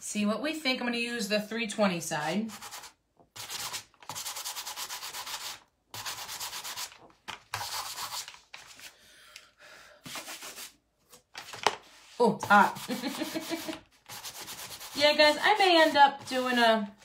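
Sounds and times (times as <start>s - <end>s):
sanding block rasping strokes: 2.5s - 6.9s, 12.6s - 16.4s.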